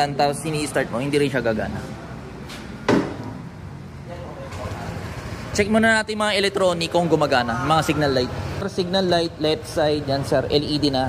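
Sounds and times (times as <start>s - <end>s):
sharp clunk: 2.5s - 3.4s.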